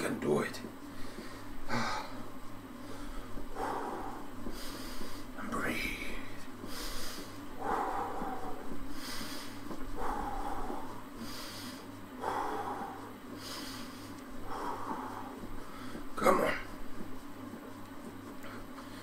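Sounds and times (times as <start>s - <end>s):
low steady hum: 0.0s - 19.0s
man breathing heavily: 0.8s - 17.7s, 18.3s - 19.0s.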